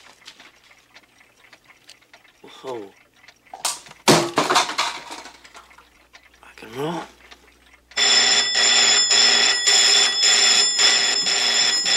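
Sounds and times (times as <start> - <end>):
electric telephone bell ringing: 8.0 - 11.9.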